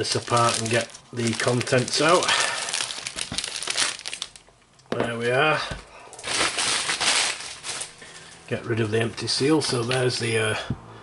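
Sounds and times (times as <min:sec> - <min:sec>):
plastic packaging crinkling: 0:00.0 - 0:04.6, 0:05.9 - 0:10.3.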